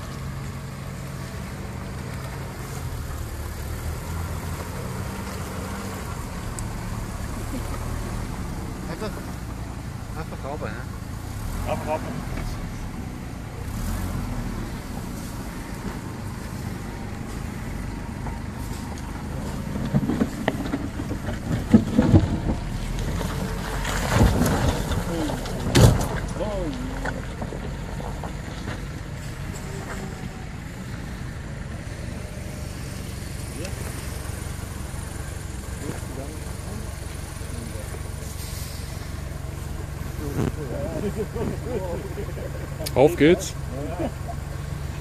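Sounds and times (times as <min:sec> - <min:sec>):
vehicle engine running at low revs: 0:00.0 - 0:45.0
vehicle knocking over rough ground: 0:00.0 - 0:45.0.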